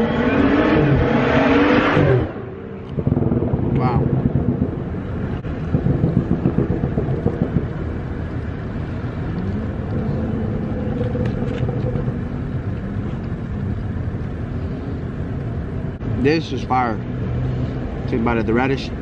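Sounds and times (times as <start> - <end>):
car engine hum: 0.0 - 19.0
street traffic rumble: 0.0 - 19.0.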